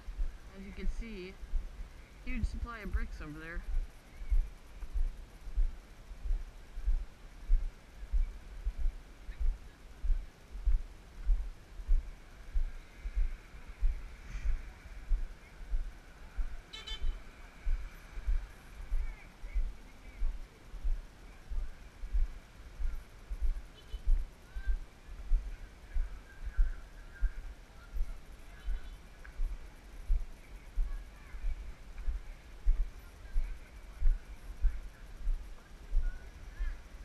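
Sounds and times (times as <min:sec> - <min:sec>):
footsteps low thumps: 0:00.0 - 0:36.8
distant horn-like tones: 0:16.7 - 0:17.4.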